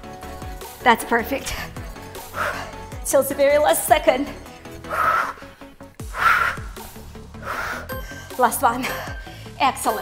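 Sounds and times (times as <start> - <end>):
upbeat workout music: 0.0 - 10.0
woman breathing out hard: 4.9 - 6.8, 7.4 - 7.9.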